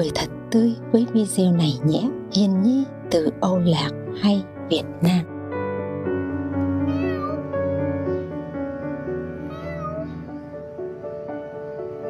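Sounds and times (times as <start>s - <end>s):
background music: 0.0s - 12.0s
cat meowing: 6.8s - 8.4s, 9.4s - 10.4s.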